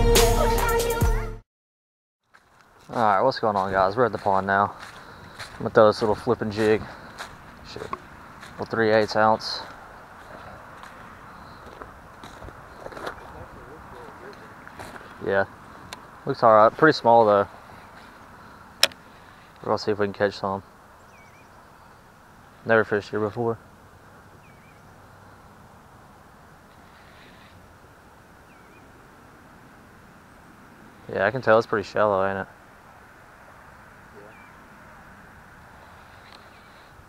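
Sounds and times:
footsteps on gravel: 0:02.2 - 0:19.6
outdoor hiss: 0:15.0 - 0:37.0
high bird chirp: 0:20.9 - 0:22.1, 0:24.3 - 0:25.0, 0:28.4 - 0:29.0, 0:34.2 - 0:34.7.

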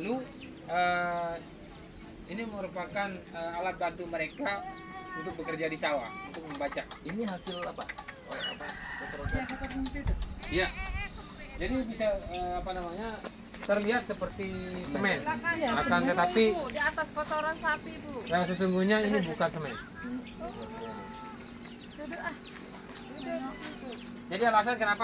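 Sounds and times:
chickens clucking: 0:00.0 - 0:25.0
rooster crowing: 0:08.4 - 0:10.0.

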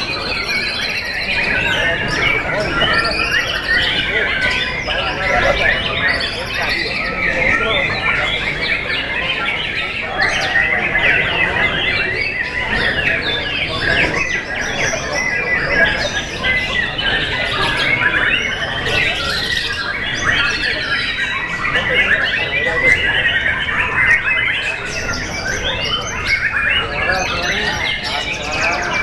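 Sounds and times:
many birds singing: 0:00.0 - 0:29.0
murmur of voices: 0:00.0 - 0:29.0.

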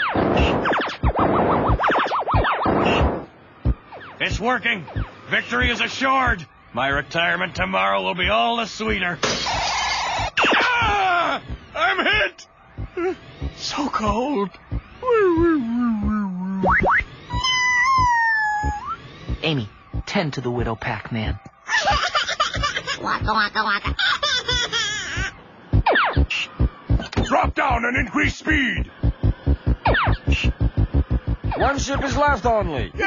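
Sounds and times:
falling electronic zap: 0:00.0 - 0:03.3, 0:09.2 - 0:11.0
low electronic marching thuds: 0:00.2 - 0:11.8, 0:12.6 - 0:20.8, 0:21.9 - 0:24.0, 0:25.1 - 0:32.8.

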